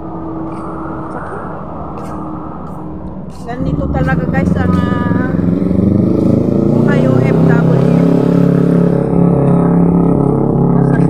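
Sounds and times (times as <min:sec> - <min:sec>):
road traffic noise: 0:00.0 - 0:11.0
woman speaking: 0:00.5 - 0:02.1, 0:03.3 - 0:05.5, 0:06.8 - 0:08.3.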